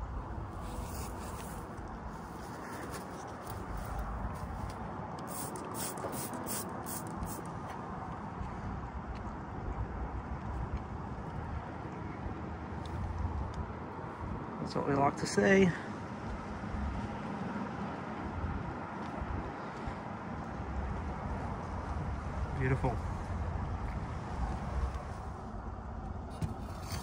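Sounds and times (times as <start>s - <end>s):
rustling scraping sounds: 0.5s - 7.4s, 26.3s - 27.0s.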